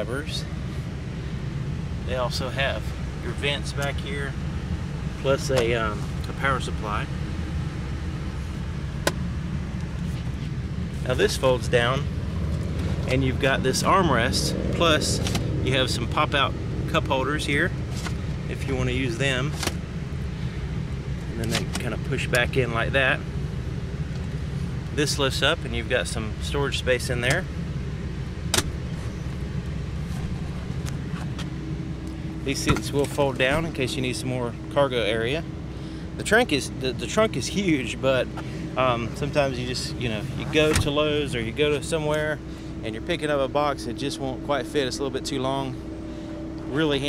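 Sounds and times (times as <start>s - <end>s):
car engine idling: 0.0s - 47.0s
armrest lid click: 28.5s - 28.8s.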